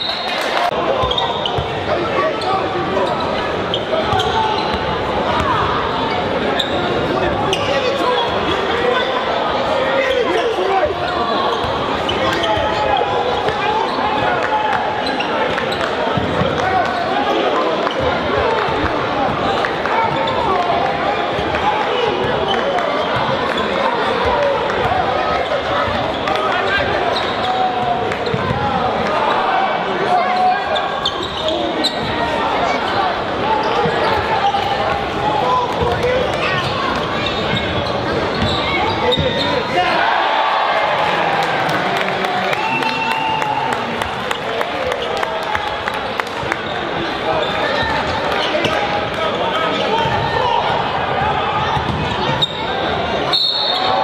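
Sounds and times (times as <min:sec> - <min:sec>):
spectators chattering: 0:00.0 - 0:54.0.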